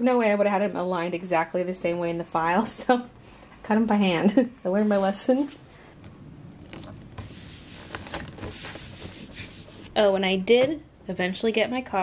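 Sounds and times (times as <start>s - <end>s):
paper rubbing and rustling: 6.7s - 10.0s.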